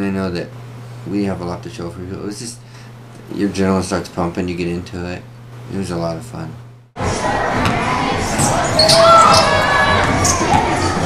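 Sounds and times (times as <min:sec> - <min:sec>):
children chattering and shouting: 0:07.0 - 0:11.0.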